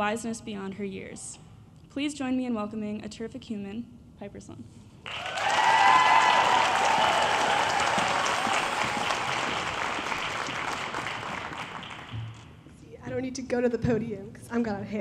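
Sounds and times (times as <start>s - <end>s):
audience applauding: 5.1s - 12.5s.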